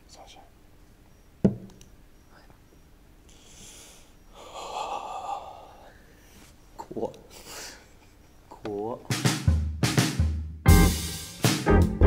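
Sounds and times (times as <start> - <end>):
person breathing out: 3.3 - 6.2.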